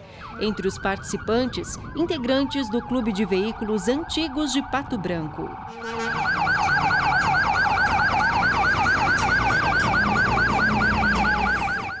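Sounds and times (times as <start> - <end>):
siren in fast yelp: 0.2 - 12.0.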